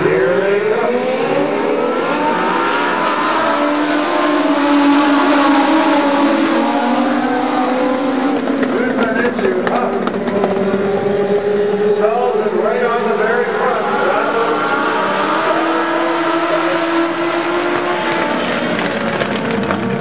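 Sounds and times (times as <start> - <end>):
race car engines passing: 0.0 - 20.0.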